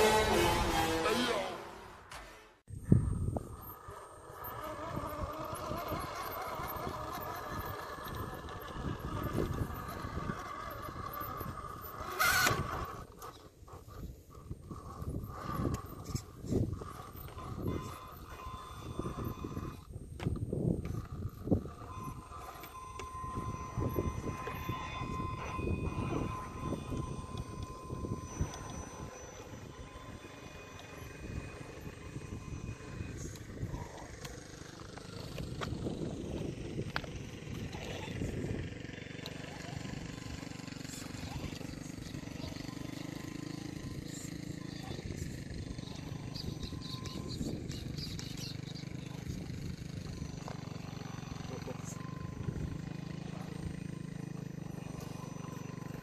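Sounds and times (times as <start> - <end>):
toy car motor whining: 0.0 - 1.9, 3.1 - 56.0.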